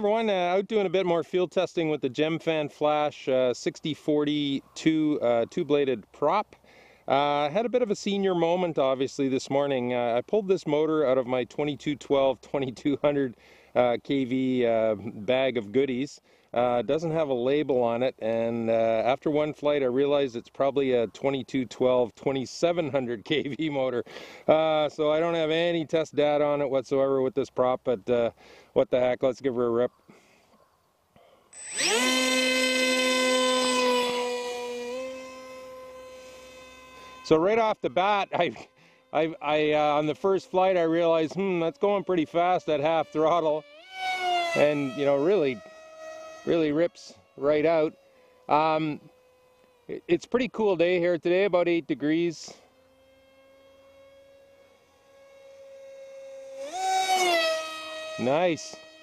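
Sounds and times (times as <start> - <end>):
electric motor propeller whine: 31.5 - 59.0.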